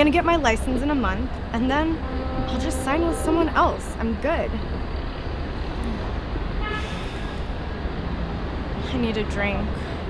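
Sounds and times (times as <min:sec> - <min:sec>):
low rumble of street traffic: 0:00.0 - 0:10.0
faint high tone: 0:01.8 - 0:04.1.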